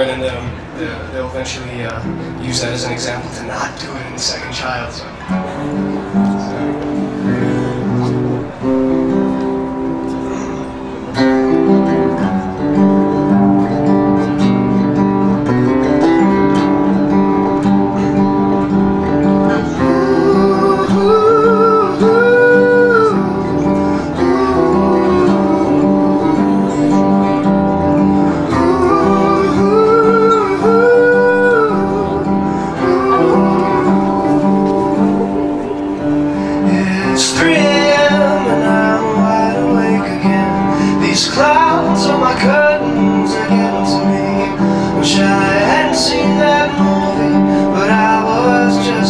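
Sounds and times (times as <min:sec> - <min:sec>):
acoustic guitar strumming: 0:00.0 - 0:49.0
man singing: 0:19.0 - 0:49.0.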